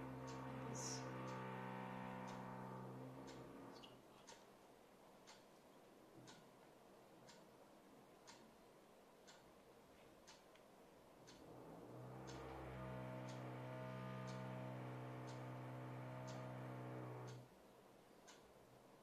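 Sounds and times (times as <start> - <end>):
steady low hum: 0.0 - 4.0, 11.3 - 17.5
clock ticking: 0.0 - 4.6, 5.2 - 5.6, 6.2 - 6.6, 7.2 - 7.6, 8.2 - 8.6, 9.2 - 9.6, 10.2 - 10.6, 11.2 - 17.5, 18.2 - 18.6.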